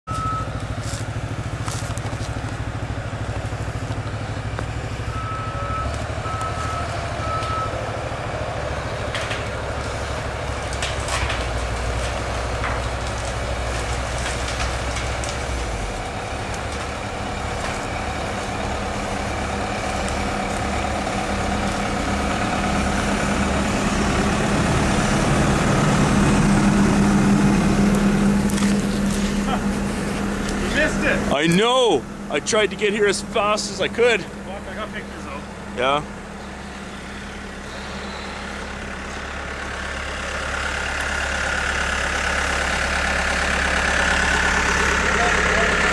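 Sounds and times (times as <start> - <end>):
excavator diesel engine running: 0.1 - 45.9.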